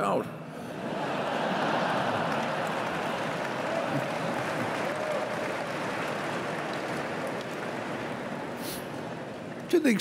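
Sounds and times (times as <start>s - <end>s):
audience laughing: 0.7s - 4.8s
audience clapping: 1.2s - 9.8s.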